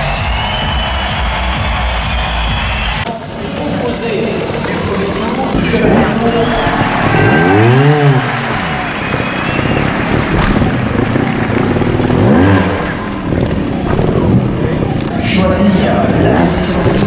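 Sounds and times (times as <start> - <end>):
motorcycle engine revving: 2.4 - 17.0.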